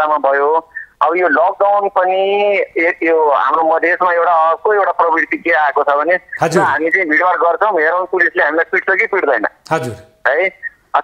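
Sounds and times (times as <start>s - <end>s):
man talking: 6.4s - 7.0s, 9.7s - 10.2s.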